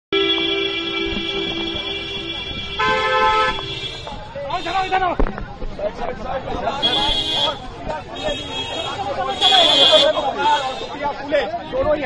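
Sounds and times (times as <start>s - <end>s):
higher car horn: 0.1s - 5.0s, 6.8s - 11.2s
long car horn: 0.1s - 5.0s, 6.8s - 7.6s, 8.2s - 11.0s.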